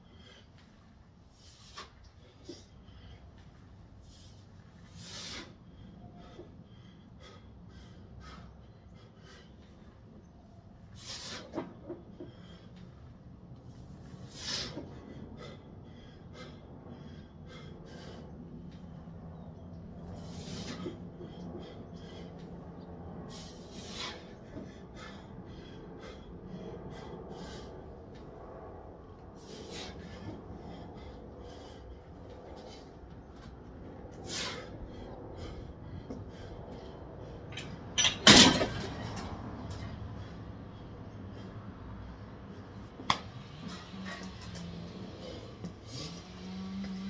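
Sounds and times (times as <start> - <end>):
man breathing hard: 0.0 - 47.0.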